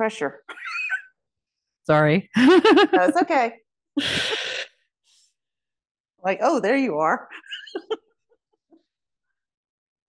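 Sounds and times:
laughter: 2.4 - 3.4, 7.3 - 8.9.

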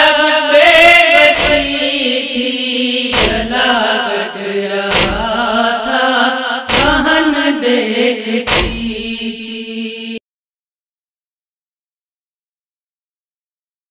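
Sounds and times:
woman chanting lament: 0.0 - 10.2
heavy thumps: 1.4 - 1.8, 3.1 - 3.6, 4.9 - 5.5, 6.7 - 7.3, 8.5 - 9.1.

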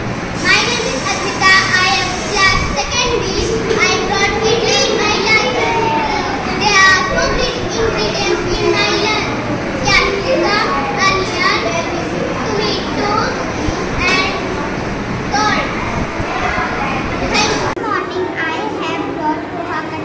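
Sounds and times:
children chattering: 0.0 - 20.0
child speaking: 0.4 - 20.0.

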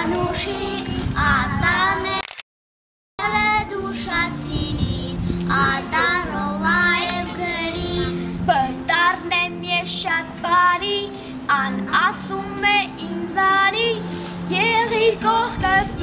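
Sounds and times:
children singing together: 0.0 - 2.2, 3.2 - 16.0
recorded backing music: 3.2 - 16.0.

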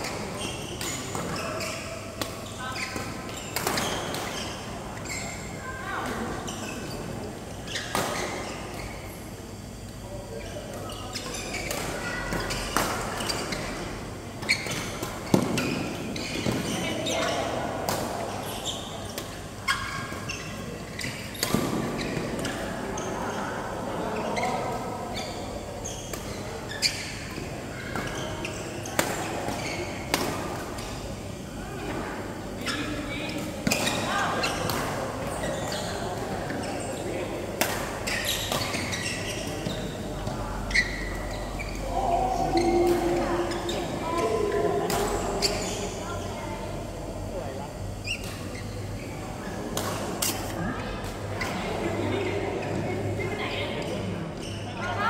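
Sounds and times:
indistinct voices: 39.9 - 47.0.

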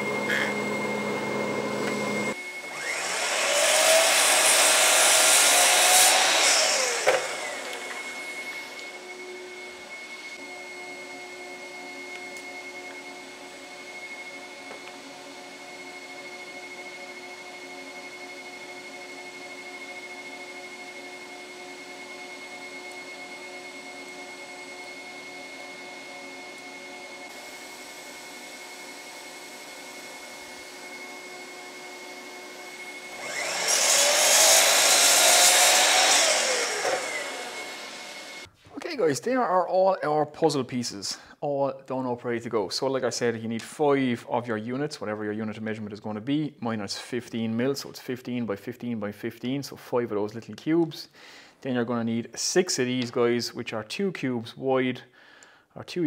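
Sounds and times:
mitre saw cutting wood: 0.0 - 9.1, 32.5 - 38.5
dust extractor humming: 0.0 - 38.5.

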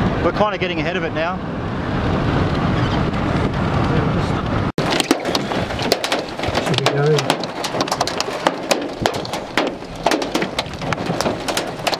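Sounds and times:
car road and engine noise: 0.0 - 11.9
rain drops striking: 4.8 - 11.9.

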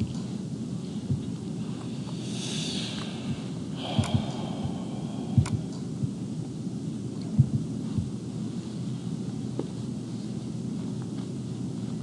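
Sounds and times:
low background rumble: 0.0 - 12.0
soft thumps: 1.1 - 1.4, 7.4 - 8.2
sharp click: 5.4 - 5.9.

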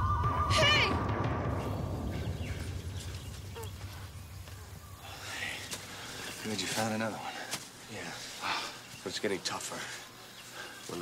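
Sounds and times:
low rumbling dramatic score: 0.0 - 6.2.

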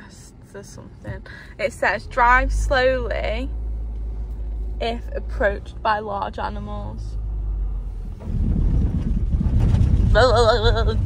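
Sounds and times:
car cabin juddering rumble: 0.5 - 11.0.

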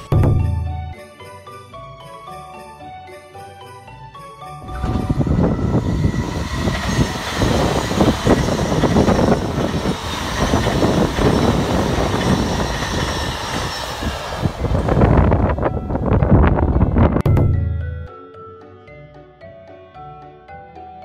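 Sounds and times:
wheels clattering over rails: 4.6 - 16.4
train passing at speed: 4.6 - 17.2.

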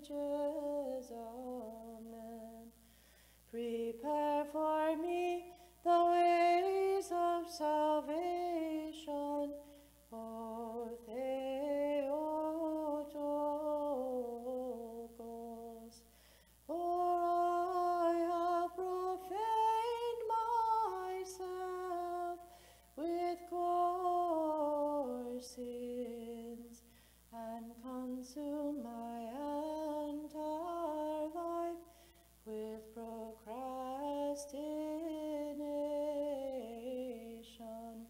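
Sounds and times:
person chanting unaccompanied: 0.0 - 2.8, 3.5 - 16.1, 16.7 - 38.0.

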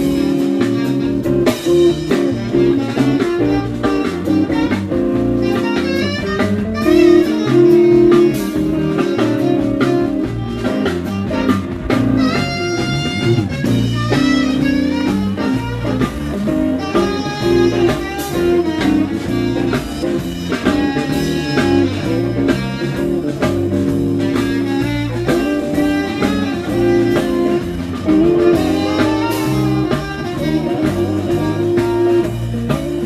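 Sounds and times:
blues band guitar bass drums: 0.0 - 33.0
blues lead bending notes: 0.0 - 33.0.

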